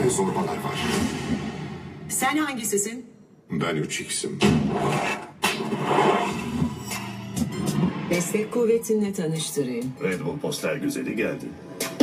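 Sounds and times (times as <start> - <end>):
film sound effects and music: 0.0 - 2.7, 3.4 - 12.0.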